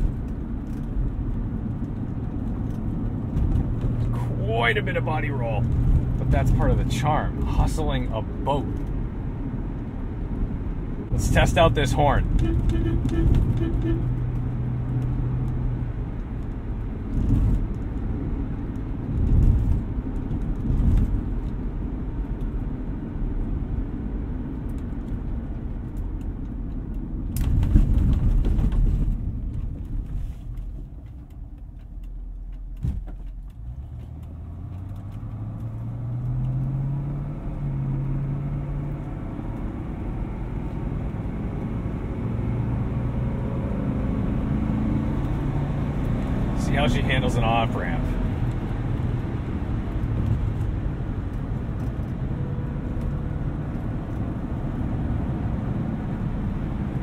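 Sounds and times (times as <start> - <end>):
car engine while driving: 0.0 - 57.0
road noise: 0.0 - 57.0.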